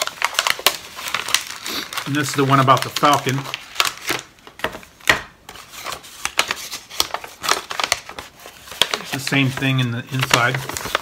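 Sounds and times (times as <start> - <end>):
wrapper crinkling and rustling: 0.0 - 11.0.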